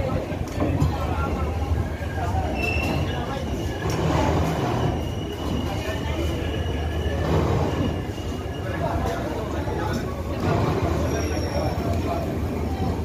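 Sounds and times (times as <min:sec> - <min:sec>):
train wheels rumbling on rail: 0:00.0 - 0:13.0
high wheel squeal: 0:02.1 - 0:09.5, 0:10.8 - 0:12.1.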